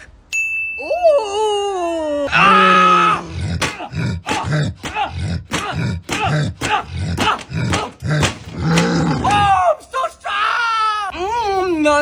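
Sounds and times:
man grunting: 2.0 - 9.7
punches smashing watermelons: 3.6 - 9.5.

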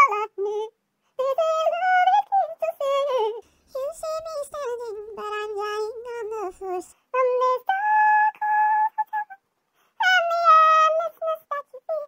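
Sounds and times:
sped-up woman singing: 0.0 - 12.0.

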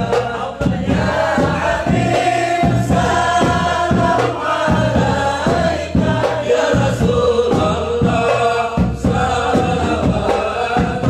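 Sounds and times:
men chanting together: 0.0 - 11.0
steady low beat: 0.0 - 11.0.

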